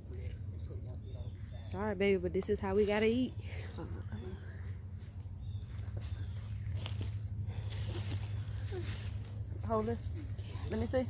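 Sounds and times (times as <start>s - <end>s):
steady low rumble: 0.0s - 11.0s
dry leaves crackling underfoot: 2.5s - 3.3s, 3.9s - 11.0s.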